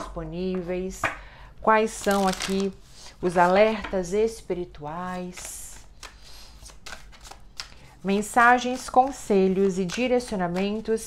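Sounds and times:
cards being shuffled: 0:01.9 - 0:03.6, 0:05.0 - 0:11.0.

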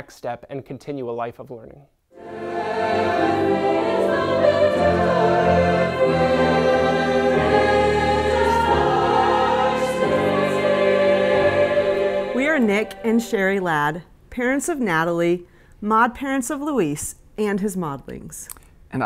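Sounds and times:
choir singing sustained chords: 0:02.1 - 0:14.0.

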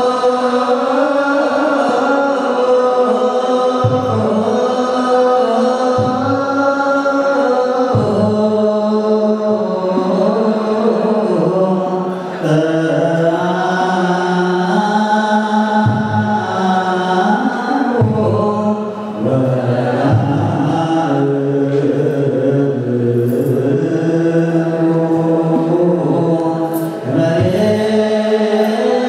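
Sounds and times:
men chanting together: 0:00.0 - 0:29.0.

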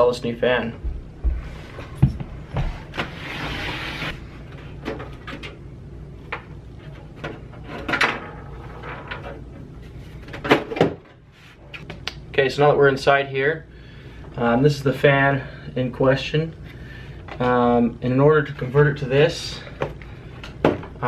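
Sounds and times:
low steady hum: 0:00.0 - 0:21.0
side panel scraping slide: 0:02.9 - 0:04.2.

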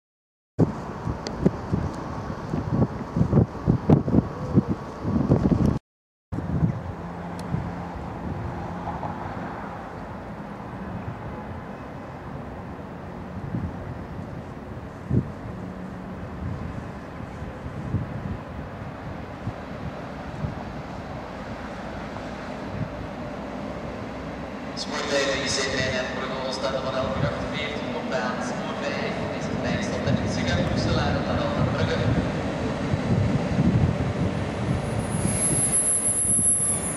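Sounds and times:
train rumbling slowly: 0:00.6 - 0:05.8, 0:06.4 - 0:36.9
wind buffeting microphone: 0:00.6 - 0:05.8, 0:06.4 - 0:24.2, 0:26.9 - 0:27.8, 0:28.7 - 0:36.9.

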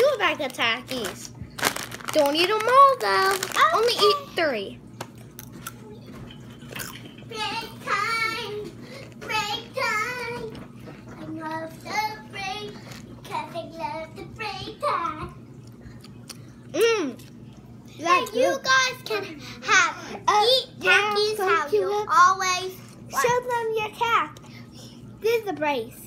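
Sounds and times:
chips crunching: 0:00.0 - 0:04.4, 0:06.6 - 0:07.1
chewing: 0:05.2 - 0:07.3, 0:15.6 - 0:18.4.

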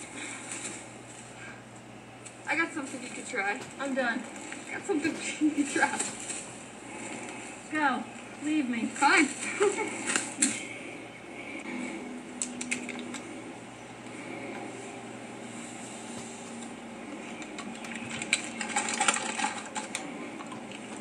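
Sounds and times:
person laughing: 0:09.4 - 0:10.6
plastic bottle clicking and crinkling: 0:17.4 - 0:21.0.

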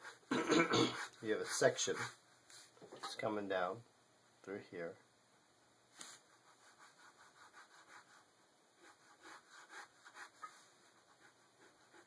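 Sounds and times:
pen scratching on paper: 0:00.9 - 0:02.2, 0:06.2 - 0:12.0.

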